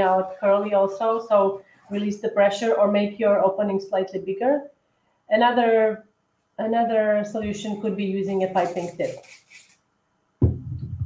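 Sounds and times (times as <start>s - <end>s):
person speaking: 0.0s - 3.0s, 6.6s - 9.7s
woman speaking: 0.0s - 4.7s, 5.3s - 6.0s, 6.6s - 9.3s.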